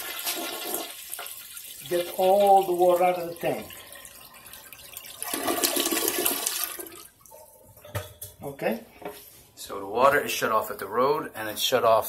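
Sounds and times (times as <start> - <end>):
toilet water rushing down bowl: 0.0 - 7.2.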